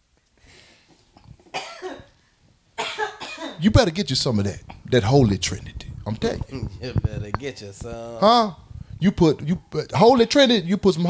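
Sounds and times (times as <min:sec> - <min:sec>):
person coughing: 0:01.5 - 0:02.1, 0:02.8 - 0:03.6.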